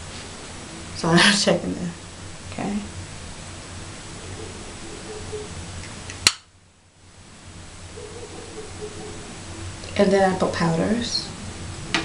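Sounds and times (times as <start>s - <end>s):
background hiss: 0.0s - 12.0s
sharp click: 6.1s - 6.5s.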